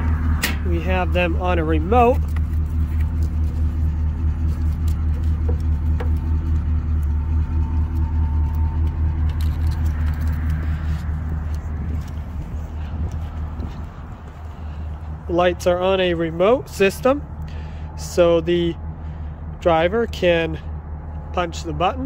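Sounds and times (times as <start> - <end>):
vehicle engine idling: 0.0 - 22.0.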